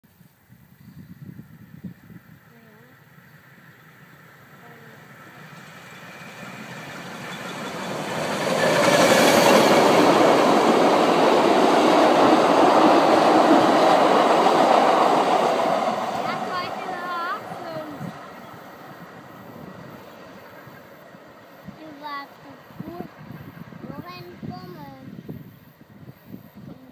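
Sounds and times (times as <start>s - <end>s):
train wheels rolling on rails: 3.2s - 26.6s.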